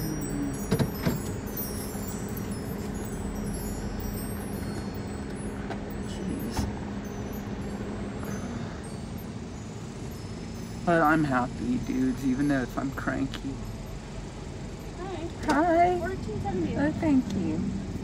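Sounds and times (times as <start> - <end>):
faint light tinkling: 0.0 - 17.7
car engine idling: 0.0 - 18.0.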